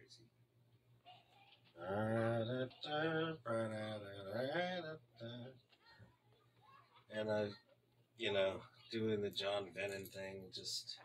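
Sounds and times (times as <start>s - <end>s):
man chanting wordless tones: 1.8s - 5.6s.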